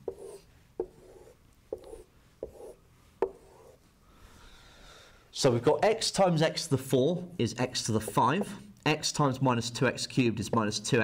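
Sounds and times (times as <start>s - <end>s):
marker pen writing on whiteboard: 0.0s - 3.8s, 7.8s - 8.6s.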